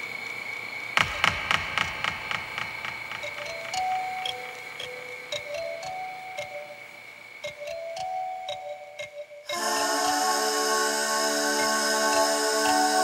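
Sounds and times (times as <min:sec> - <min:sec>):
steady high whine: 0:00.0 - 0:13.0
music box plucked notes: 0:03.2 - 0:09.7.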